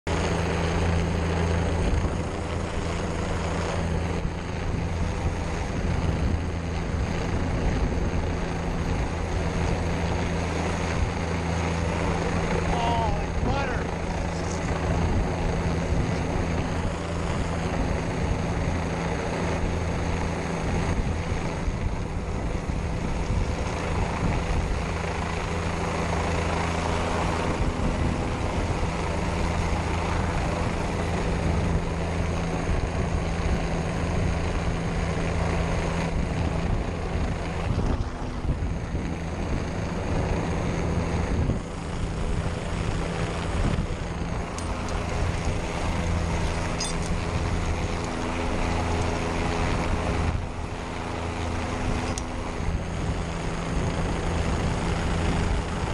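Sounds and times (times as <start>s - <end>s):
helicopter rotor and engine drone: 0.0s - 55.9s
rotor wash buffeting microphone: 0.1s - 55.9s.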